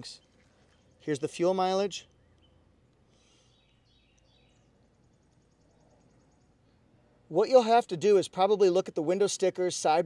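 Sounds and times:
faint bird chirps: 2.0 - 7.3.

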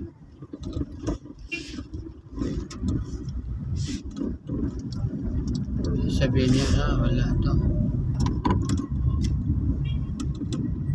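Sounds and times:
road and motor rumble: 0.0 - 10.9
light ticks and rattles: 0.3 - 6.9.

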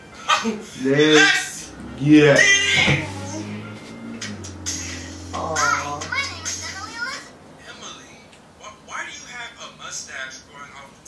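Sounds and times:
high-pitched cartoon girl voice: 5.4 - 7.3.

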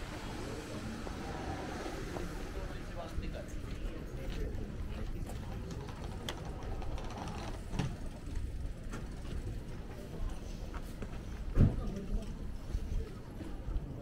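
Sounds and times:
indistinct voices of passersby: 0.0 - 14.0.

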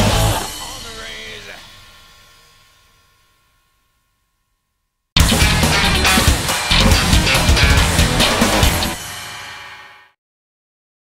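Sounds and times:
punk rock band playing: 0.0 - 2.3, 5.2 - 10.0
held guitar chord ringing: 0.0 - 10.0.

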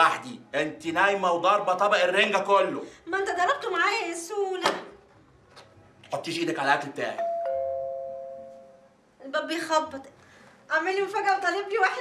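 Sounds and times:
two-note doorbell chime: 7.2 - 8.8.

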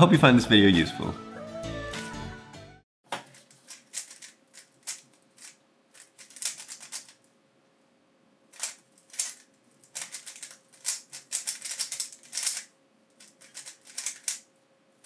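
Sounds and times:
plastic puzzle cube clacking: 3.3 - 7.2, 8.6 - 14.4.

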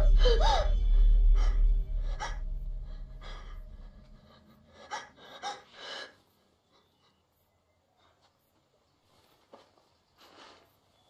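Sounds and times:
low rumble: 0.0 - 5.4
woman gasping for breath: 0.0 - 6.2.

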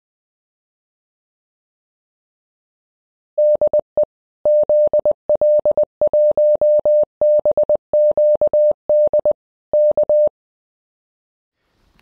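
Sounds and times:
morse code beeps: 3.4 - 10.3.

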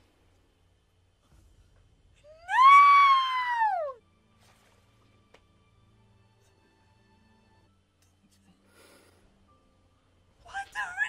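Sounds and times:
person screaming: 2.3 - 4.0.

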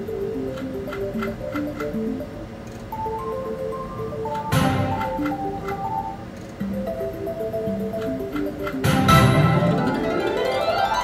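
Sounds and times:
slot machine chiming tune: 0.0 - 11.0
light ticks of reels stopping: 0.4 - 2.0, 7.9 - 8.8
loud slot machine hit: 4.5 - 5.4, 8.6 - 11.0.

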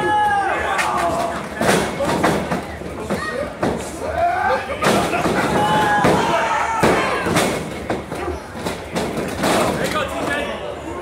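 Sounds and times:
spectators shouting: 0.0 - 1.5, 4.1 - 7.6
wrestlers' sharp impacts: 0.8 - 4.0, 4.8 - 10.2.

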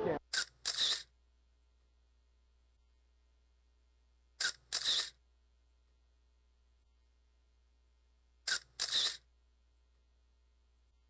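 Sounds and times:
camera shutter clicks: 0.3 - 1.1, 4.4 - 5.2, 8.5 - 9.2.

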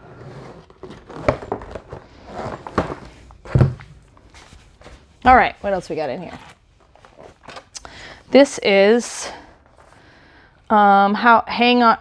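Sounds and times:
cardboard rustling: 0.4 - 7.7
dull thuds of cardboard boxes: 2.5 - 4.0.

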